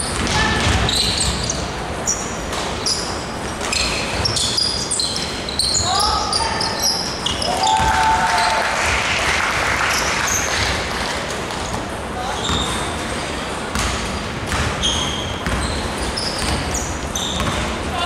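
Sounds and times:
basketball bouncing: 0:00.0 - 0:01.6, 0:13.7 - 0:17.8
sneakers squeaking on court: 0:00.0 - 0:07.9, 0:11.5 - 0:18.0.

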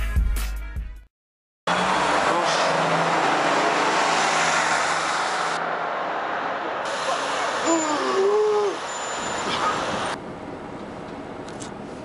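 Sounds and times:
passing vehicles: 0:01.7 - 0:12.0.

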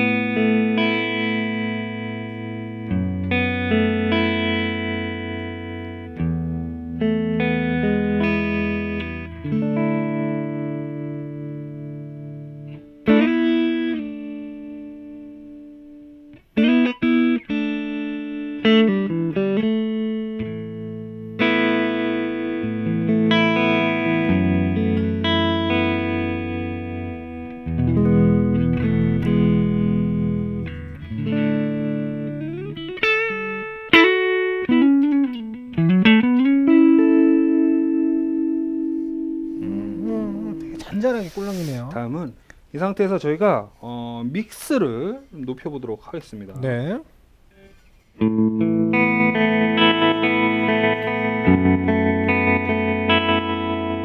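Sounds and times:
electric guitar with tremolo: 0:00.0 - 0:42.6, 0:47.4 - 0:54.0.

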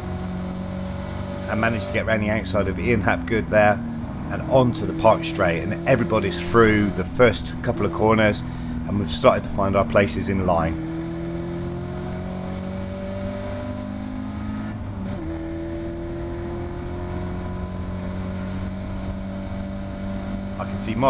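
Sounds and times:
race car engine accelerating: 0:00.0 - 0:21.0.

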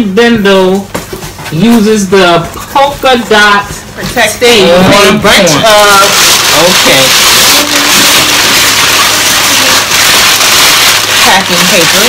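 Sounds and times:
packing paper rustling: 0:05.4 - 0:12.0.

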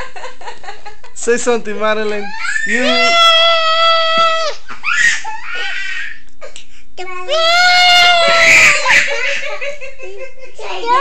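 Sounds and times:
high-pitched voice squealing: 0:02.4 - 0:04.6.

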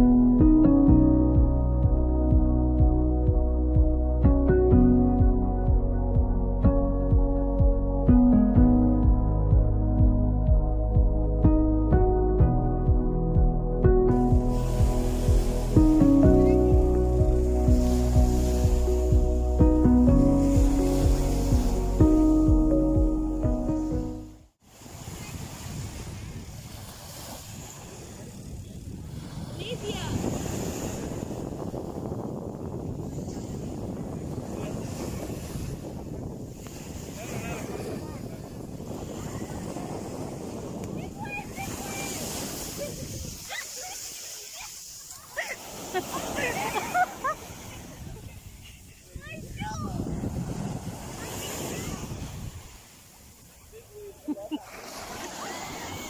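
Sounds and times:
wind rumbling on microphone: 0:00.0 - 0:23.1, 0:24.7 - 0:56.0
surf: 0:00.0 - 0:56.0
small waves washing onto sand: 0:14.3 - 0:19.6, 0:20.3 - 0:22.2, 0:24.6 - 0:56.0.

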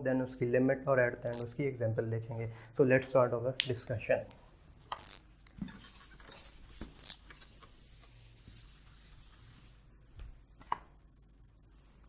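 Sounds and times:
eraser rubbing on whiteboard: 0:05.0 - 0:09.8.

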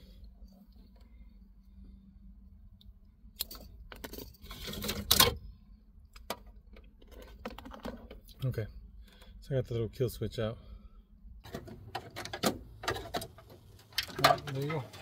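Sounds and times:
wires rustling: 0:11.5 - 0:15.0.

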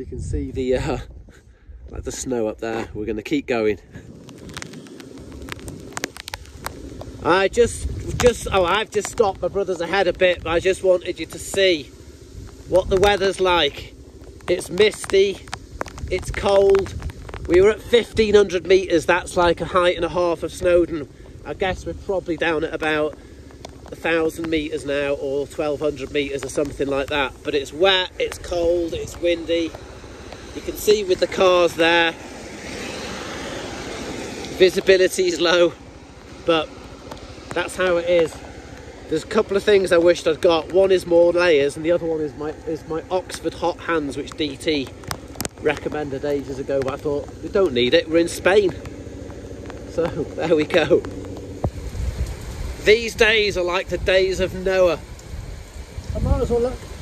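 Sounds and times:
wind on phone microphone: 0:00.0 - 0:22.6, 0:51.0 - 0:57.0
tyres hissing on wet road: 0:03.7 - 0:57.0
sharp clicks and crackles: 0:03.9 - 0:57.0.

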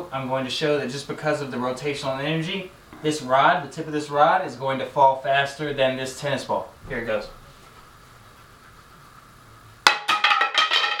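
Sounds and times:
wooden rod hitting tile floor: 0:09.8 - 0:11.0.

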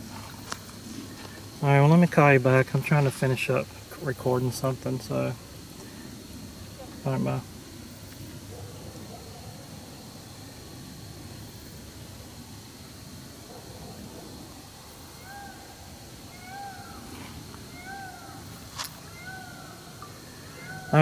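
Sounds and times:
faint steady high tone: 0:14.1 - 0:21.0
animal calling: 0:15.0 - 0:21.0.

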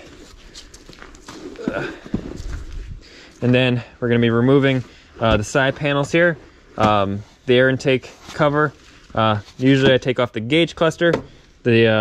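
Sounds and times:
footsteps on gravel: 0:00.0 - 0:03.6.

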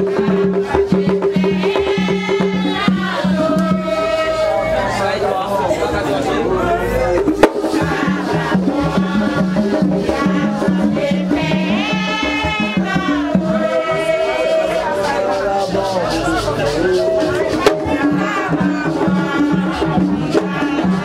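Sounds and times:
drum rhythm: 0:00.0 - 0:21.0
group singing: 0:00.0 - 0:21.0.

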